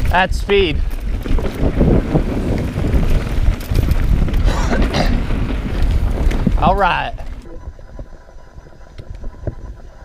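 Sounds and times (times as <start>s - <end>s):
tyres rumbling on dirt: 0.0s - 7.9s
bike clicks and rattles: 0.0s - 10.0s
wind rushing over microphone: 0.0s - 10.0s.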